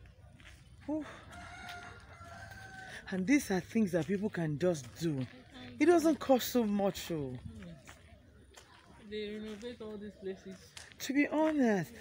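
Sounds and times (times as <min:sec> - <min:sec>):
faint rooster crow: 0:00.9 - 0:03.2.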